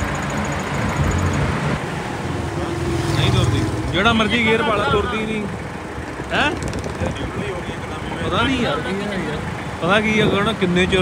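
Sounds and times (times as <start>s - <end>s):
engine idling: 3.3s - 11.0s.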